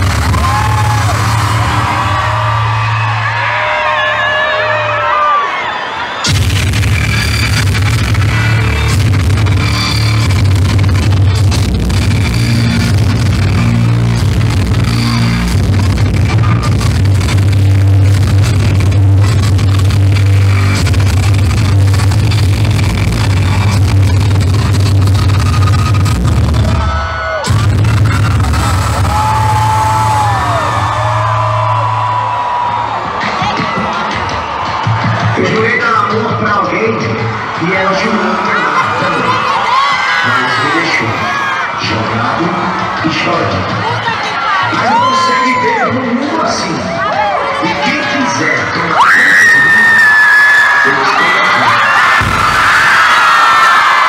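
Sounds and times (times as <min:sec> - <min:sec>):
crowd screaming: 0:00.0 - 0:54.0
loud music over pa system: 0:00.0 - 0:54.0.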